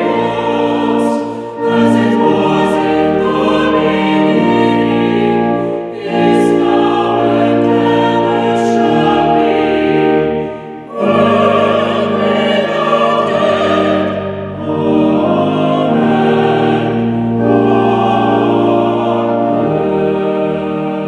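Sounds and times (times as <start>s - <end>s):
vocal ensemble singing in harmony: 0.0s - 21.0s.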